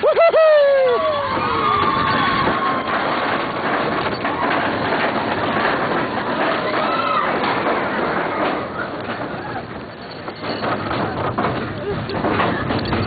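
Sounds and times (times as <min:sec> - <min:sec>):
riders shouting whoo: 0:00.0 - 0:03.0
roller coaster train rattling: 0:00.0 - 0:13.0.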